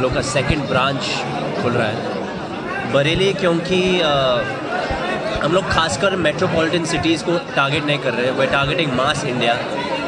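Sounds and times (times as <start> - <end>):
crowd voices talking: 0.0 - 10.0.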